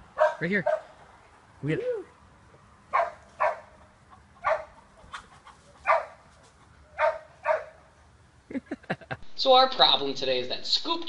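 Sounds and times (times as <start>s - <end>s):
dog barking: 0.2s - 0.9s, 2.9s - 3.8s, 4.4s - 4.8s, 5.8s - 6.2s, 6.9s - 7.8s.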